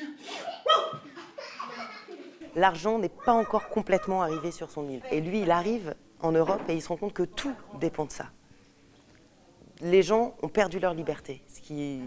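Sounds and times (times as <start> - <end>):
person laughing: 0.4 - 2.4.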